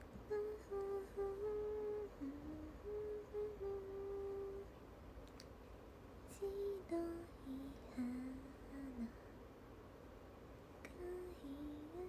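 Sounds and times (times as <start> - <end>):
woman humming: 0.0 - 4.7, 6.3 - 9.2, 10.9 - 12.0.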